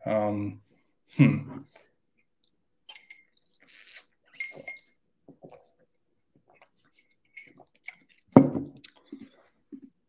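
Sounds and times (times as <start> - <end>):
drinking glass clinking: 2.9 - 3.4, 4.3 - 5.0
person sipping: 3.5 - 5.8, 6.5 - 9.8.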